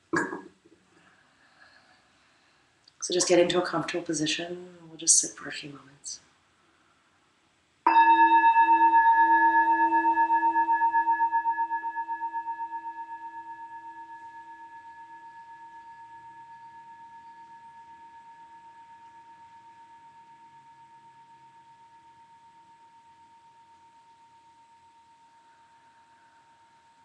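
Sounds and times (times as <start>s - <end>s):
metal singing bowl ringing: 7.9s - 27.0s.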